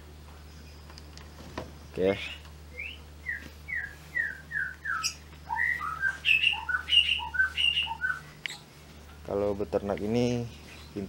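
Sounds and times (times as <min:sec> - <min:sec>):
bird calling and chirping: 0:01.9 - 0:08.7.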